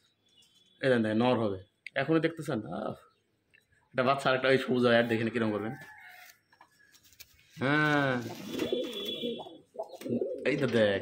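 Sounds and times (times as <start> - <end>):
pigeons cooing: 8.1 - 10.8.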